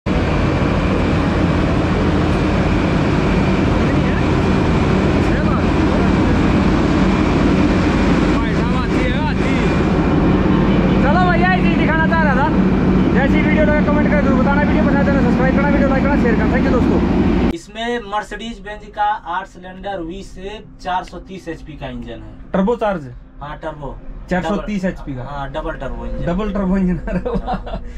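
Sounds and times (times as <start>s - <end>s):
loud engine running: 0.1s - 17.5s.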